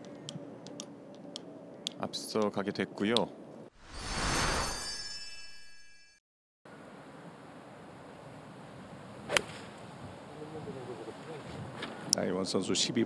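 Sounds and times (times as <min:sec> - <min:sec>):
quiet outdoor ambience: 0:00.0 - 0:03.7, 0:06.7 - 0:13.0
whoosh: 0:03.8 - 0:05.7
high ringing chime tones: 0:03.9 - 0:06.2
golf club striking ball: 0:09.3 - 0:09.6.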